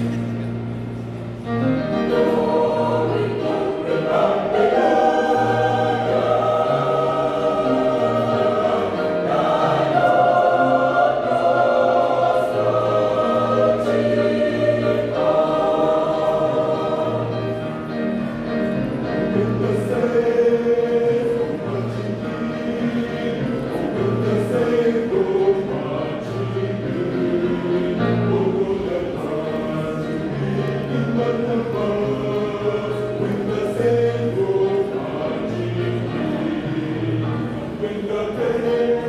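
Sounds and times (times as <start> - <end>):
mixed choir singing gospel: 1.4 - 39.0.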